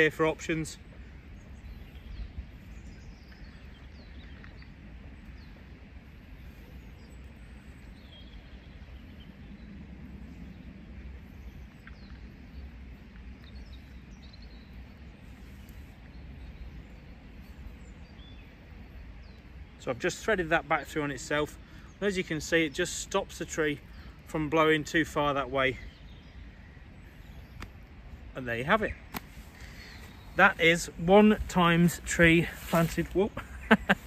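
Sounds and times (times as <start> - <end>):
low steady rumble: 0.0 - 19.8
bird chirps: 6.4 - 34.0.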